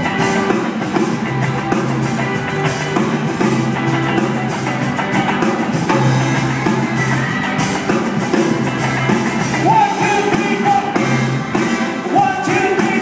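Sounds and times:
live rock band: 0.0 - 13.0.

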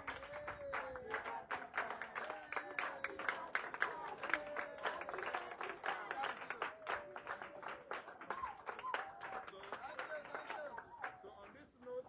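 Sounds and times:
children clapping in rhythm: 0.0 - 11.7.

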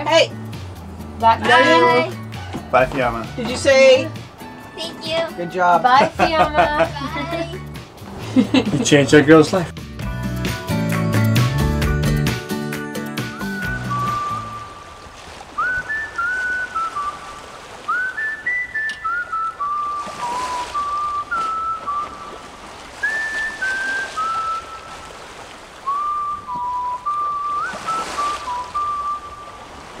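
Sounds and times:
whistled tune: 10.9 - 29.7.

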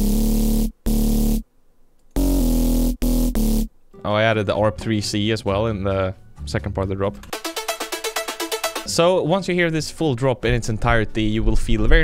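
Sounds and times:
synth bass and chord stabs: 0.0 - 1.4, 2.2 - 3.7, 7.3 - 9.0.

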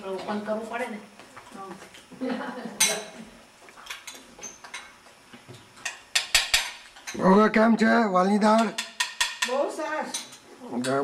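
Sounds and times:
dishes and cutlery clinking: 2.8 - 3.2, 3.8 - 7.2.

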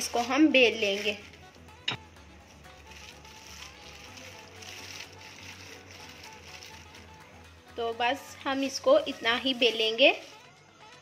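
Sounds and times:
plastic sheet rustling: 0.0 - 1.7, 2.6 - 7.3
faint background music: 0.0 - 11.0.

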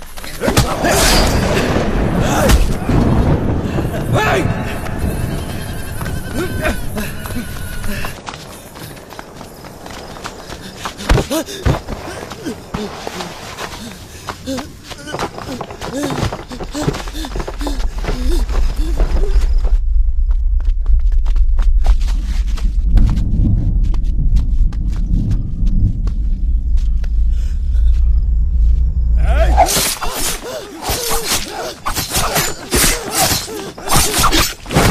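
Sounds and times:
men shouting cries: 0.4 - 8.2, 29.2 - 34.4
low rumble of scuffling: 17.1 - 29.6.

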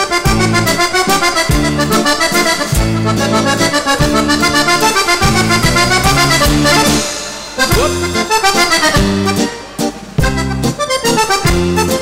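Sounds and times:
accordion dance tune: 0.0 - 12.0
bass and drums: 0.0 - 12.0.

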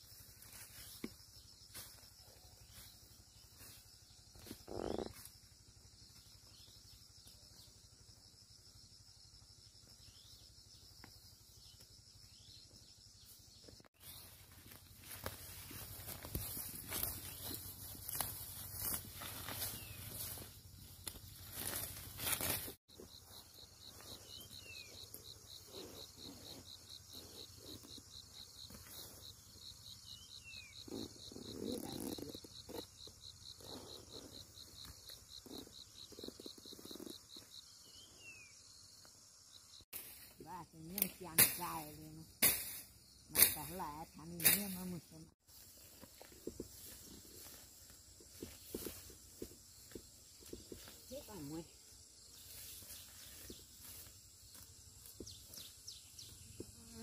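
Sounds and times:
grass and leaves rustling: 0.0 - 5.4, 13.4 - 37.1, 39.9 - 57.0
insects trilling: 0.0 - 57.0.

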